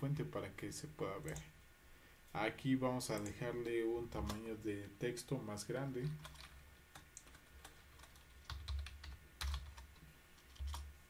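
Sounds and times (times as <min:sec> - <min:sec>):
computer keyboard typing: 0:03.1 - 0:04.4, 0:06.0 - 0:10.9.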